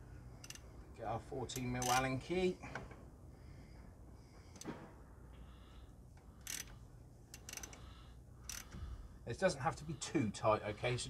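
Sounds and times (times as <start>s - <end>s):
ratchet clicking: 0.4s - 0.6s, 1.5s - 2.1s, 6.4s - 8.8s.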